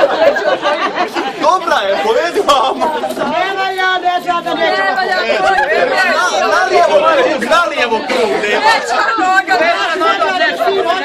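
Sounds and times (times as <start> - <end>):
voices chattering: 0.0 - 11.0
man talking: 1.4 - 9.0.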